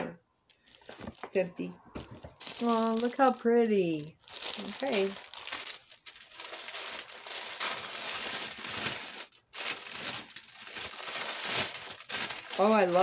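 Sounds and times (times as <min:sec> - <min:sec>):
paper wrapping crinkling: 0:00.5 - 0:01.4, 0:02.0 - 0:13.0.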